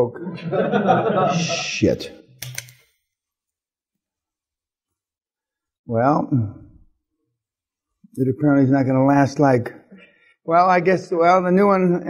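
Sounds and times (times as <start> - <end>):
handheld gadget clicks: 2.4 - 2.9.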